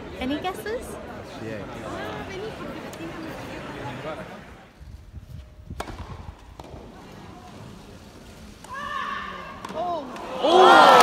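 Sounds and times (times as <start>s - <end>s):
low crowd murmur: 0.0s - 11.0s
tennis racket hitting ball: 5.8s - 6.9s.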